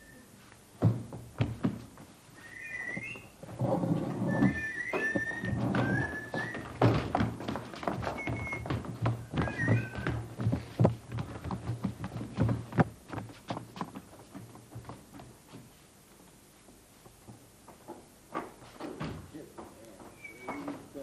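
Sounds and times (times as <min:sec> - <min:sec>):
feet stamping on wooden stage: 0:00.4 - 0:21.0.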